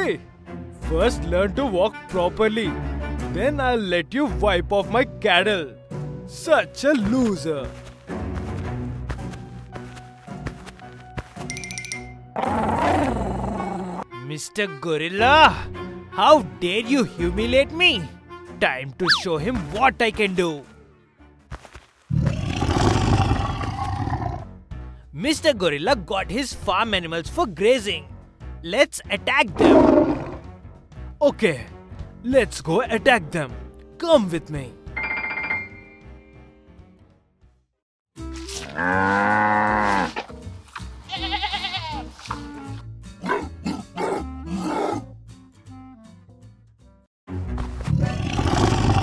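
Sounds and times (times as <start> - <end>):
background music: 0.0 - 21.7, 22.3 - 49.0
big cat roaring: 12.4 - 14.0, 22.1 - 24.5, 29.6 - 30.5, 38.7 - 40.2, 43.2 - 45.1, 47.9 - 49.0
quavering bleat: 38.6 - 40.2, 41.1 - 42.6.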